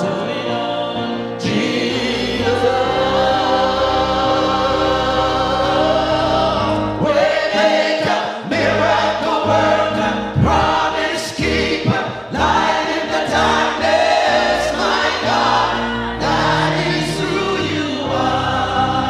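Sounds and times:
choir singing gospel in harmony: 0.0s - 19.0s.

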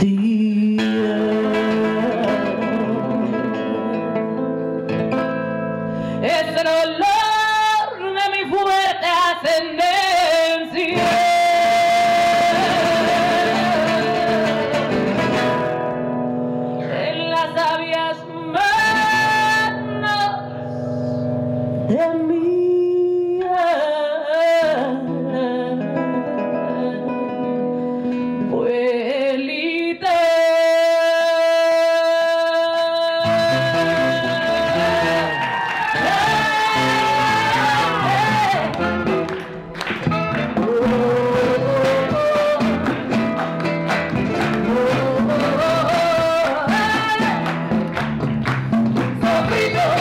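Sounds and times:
woman singing slow song: 0.0s - 4.6s, 6.1s - 14.8s, 16.8s - 39.0s, 40.6s - 42.9s, 44.6s - 47.5s, 49.2s - 50.0s
instrumental accompaniment: 33.3s - 50.0s.

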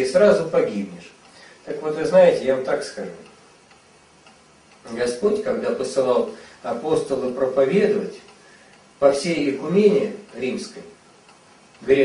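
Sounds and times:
man speaking: 0.0s - 3.4s, 4.8s - 8.3s, 9.0s - 11.0s, 11.8s - 12.0s.

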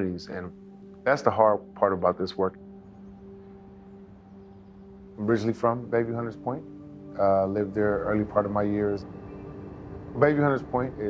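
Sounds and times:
soft sustained music note: 0.0s - 11.0s.

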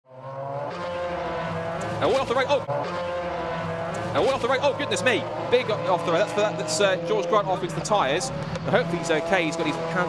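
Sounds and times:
race car engines running: 0.1s - 10.0s.

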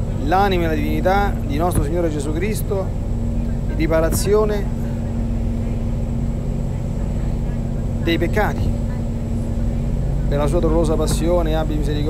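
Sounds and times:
low hum and rumble: 0.0s - 12.0s.

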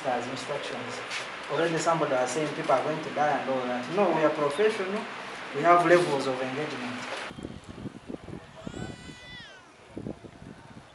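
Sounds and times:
high-pitched drawn-out cry: 8.6s - 9.6s.

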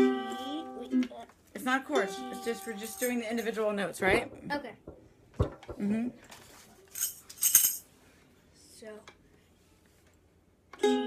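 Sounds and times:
tambourine jingle: 2.7s - 3.5s, 7.0s - 7.8s.

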